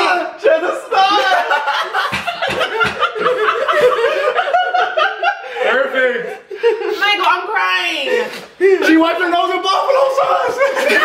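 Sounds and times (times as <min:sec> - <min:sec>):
women laughing: 0:01.0 - 0:07.2, 0:10.5 - 0:11.0.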